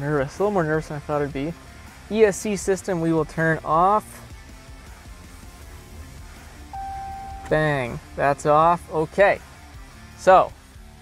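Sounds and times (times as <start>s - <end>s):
dashboard chime: 6.8s - 7.9s.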